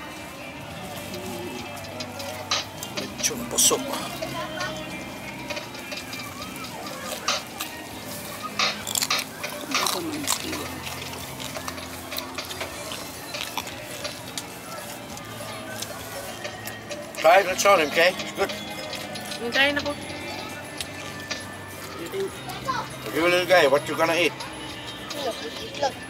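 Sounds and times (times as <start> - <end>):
background music: 0.0 - 26.0
people talking: 0.0 - 26.0.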